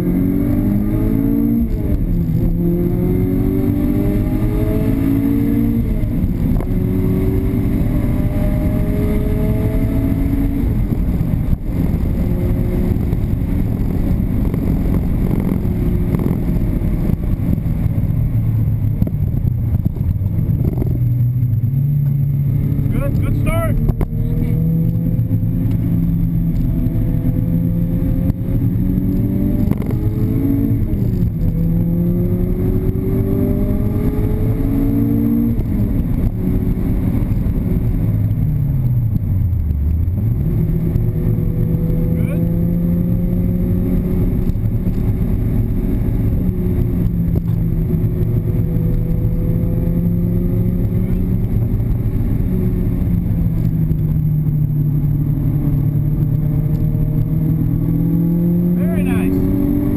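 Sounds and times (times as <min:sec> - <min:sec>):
car engine revving from inside cabin: 0:00.0 - 0:17.5, 0:20.4 - 0:38.4, 0:39.0 - 0:59.9.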